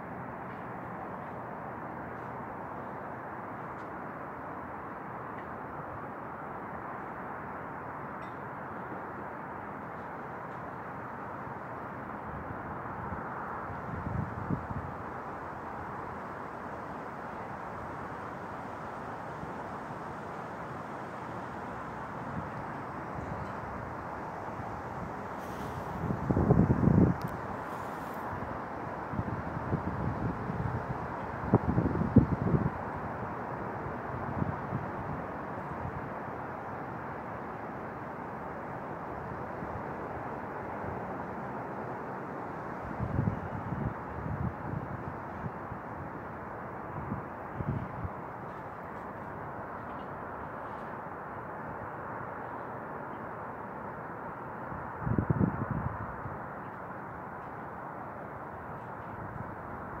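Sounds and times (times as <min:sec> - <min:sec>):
outdoor background noise: 0:00.0 - 1:00.0
wind gusts buffeting microphone: 0:12.2 - 0:36.3, 0:42.7 - 0:49.3, 0:54.8 - 0:56.4.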